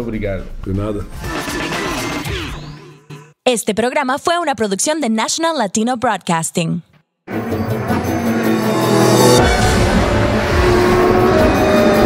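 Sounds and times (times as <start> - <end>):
car engine sound effect: 7.3 - 12.0
loud theme music: 7.3 - 12.0.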